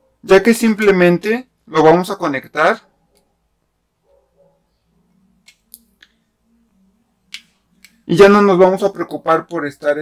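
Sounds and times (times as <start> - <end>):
faint steady hum: 2.8 - 8.7.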